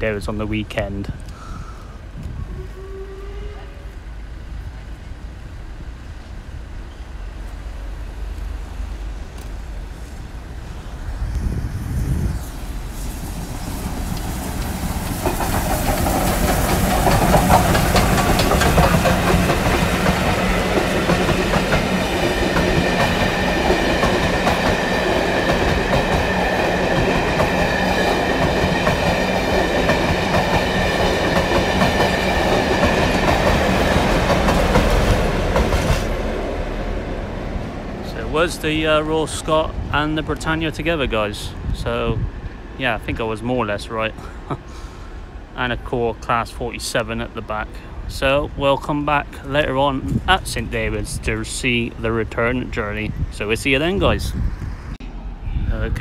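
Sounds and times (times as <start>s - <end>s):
steam train passing slowly: 0.0s - 56.0s
diesel locomotive passing: 1.9s - 56.0s
carriages rumbling: 12.6s - 55.4s
wheels clacking over rail joints: 13.4s - 37.0s.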